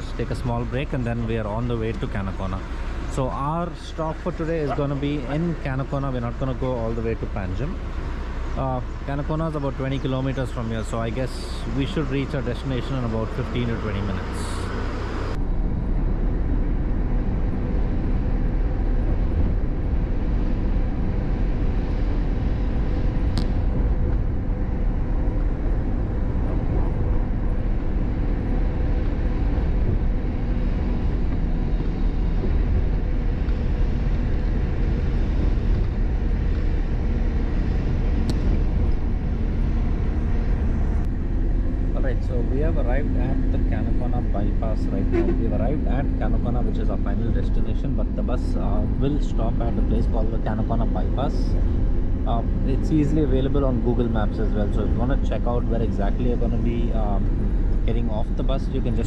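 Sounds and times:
voices: 0:00.0 - 0:07.8, 0:42.0 - 0:51.5
engine and road noise drone: 0:00.0 - 0:59.0
faint steady whine: 0:00.0 - 0:59.0.

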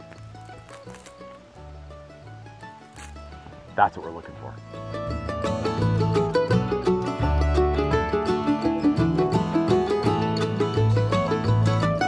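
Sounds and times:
plucked string music: 0:00.0 - 0:12.0
dry bread tearing: 0:00.2 - 0:01.4.

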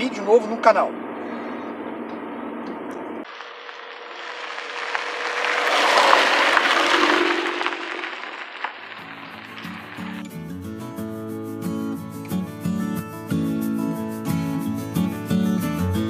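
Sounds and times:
in-car engine drone: 0:00.0 - 0:10.2
tyres hissing on gravel: 0:03.2 - 0:10.5
acoustic guitar music: 0:08.7 - 0:16.0.

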